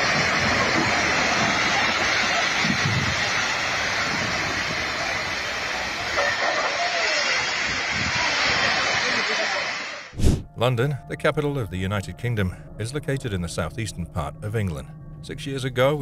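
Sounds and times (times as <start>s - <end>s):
landslide rushing rumble: 0.0s - 10.1s.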